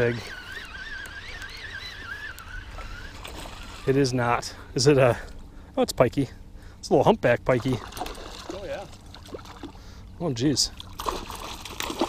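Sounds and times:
fishing reel gear whine: 0.0s - 5.2s.

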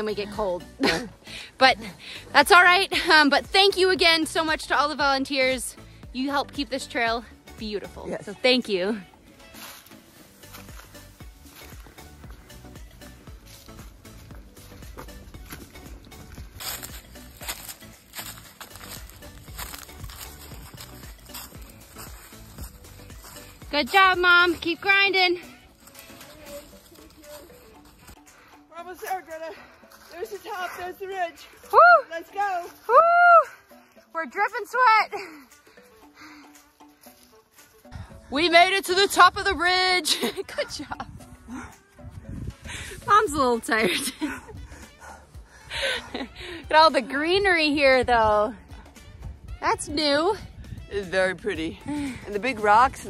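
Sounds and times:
person breathing hard: 1.2s - 2.3s, 35.2s - 37.0s, 41.4s - 43.1s, 44.3s - 46.7s, 51.8s - 52.4s
footsteps crunching on rocky trail: 9.2s - 33.0s, 35.6s - 39.2s.

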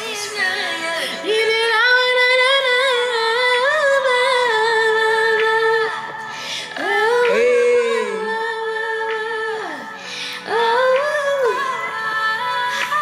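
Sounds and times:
woman singing a long note: 6.8s - 9.9s.

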